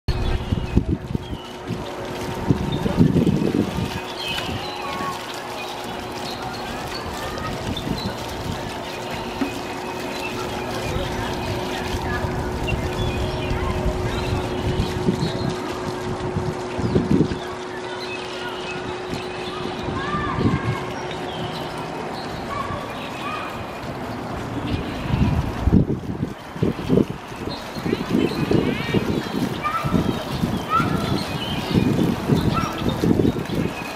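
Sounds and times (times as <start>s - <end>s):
wind buffeting microphone: 0.1s - 18.0s, 18.6s - 33.9s.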